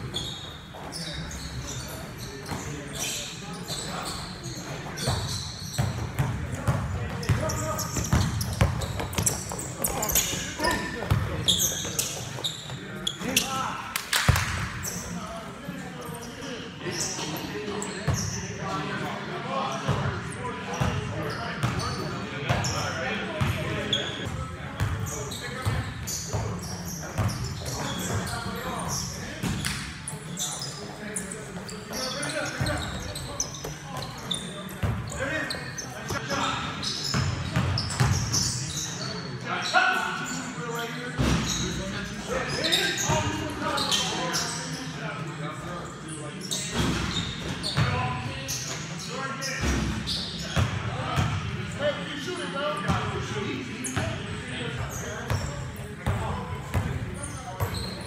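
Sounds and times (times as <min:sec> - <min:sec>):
basketball bouncing on court: 0:05.0 - 0:11.9, 0:37.1 - 0:38.2.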